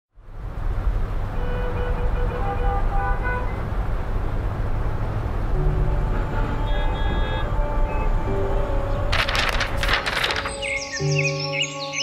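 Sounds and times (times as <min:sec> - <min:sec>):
city traffic rumble: 0:00.1 - 0:11.9.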